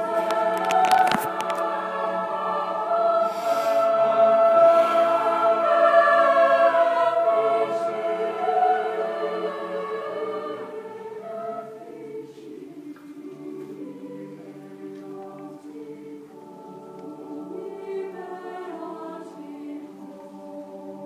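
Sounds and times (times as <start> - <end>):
choir singing sustained chords: 0.0 - 21.0.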